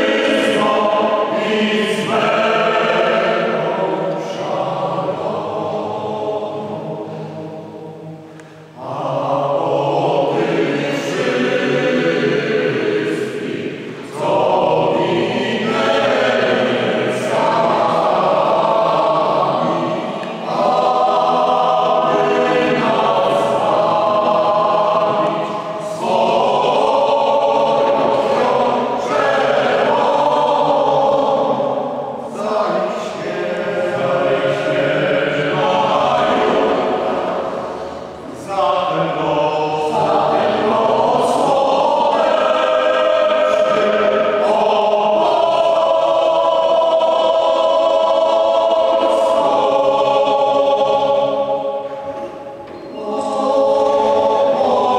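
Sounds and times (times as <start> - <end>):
mixed choir singing: 0.0 - 54.9.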